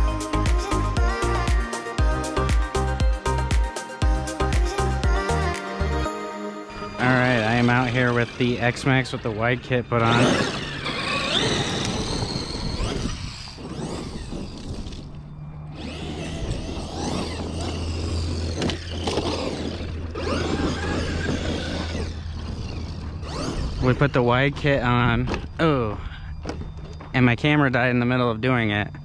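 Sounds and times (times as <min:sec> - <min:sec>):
electric motor whining: 0:00.0 - 0:06.1, 0:06.7 - 0:29.0
tyres on dirt: 0:07.0 - 0:29.0.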